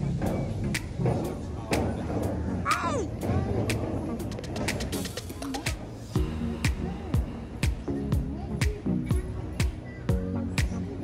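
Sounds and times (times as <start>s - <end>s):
background music with steady beat: 0.0s - 11.0s
busy outdoor ambience: 0.0s - 11.0s.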